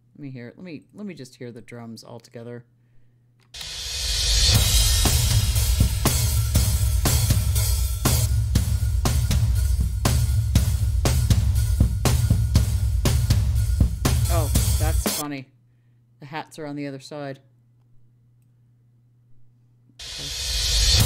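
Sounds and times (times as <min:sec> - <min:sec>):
cymbal swell: 0:03.6 - 0:11.7, 0:20.0 - 0:21.0
drum kit beat: 0:03.6 - 0:15.2, 0:20.0 - 0:21.0.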